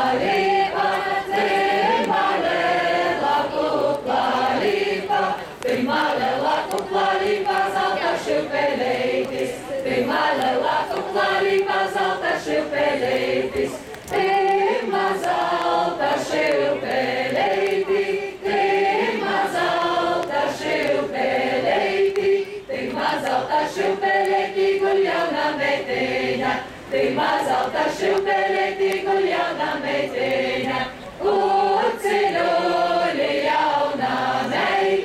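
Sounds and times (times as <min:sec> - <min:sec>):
group singing folk song in chorus: 0:00.0 - 0:35.0.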